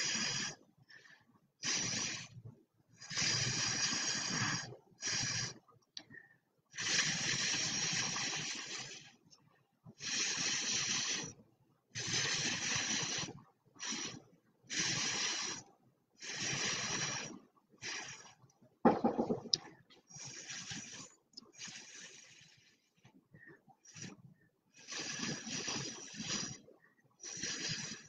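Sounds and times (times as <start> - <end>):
breath puffs through a straw: 0.0 - 9.3, 9.9 - 11.4, 12.0 - 28.0.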